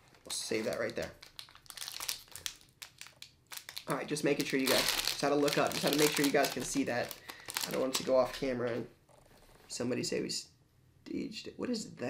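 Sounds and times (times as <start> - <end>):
plastic foil packaging crinkling: 0.0 - 8.7.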